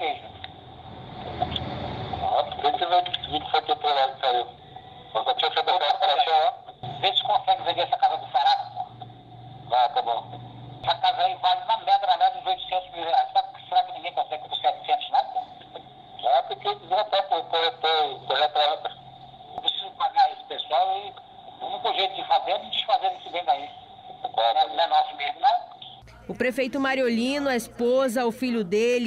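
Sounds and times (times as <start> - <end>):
men talking over phone line: 2.2 - 29.0.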